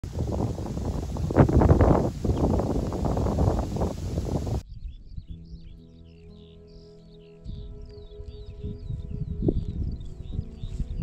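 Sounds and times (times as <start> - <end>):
wind buffeting microphone: 0.0 - 5.7, 7.5 - 11.0
birds chirping: 0.1 - 11.0
soft ambient music: 4.6 - 11.0.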